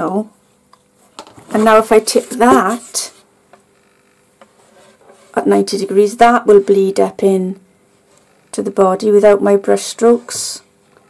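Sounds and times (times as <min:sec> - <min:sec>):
soft rub against wooden edge: 0:04.4 - 0:05.4.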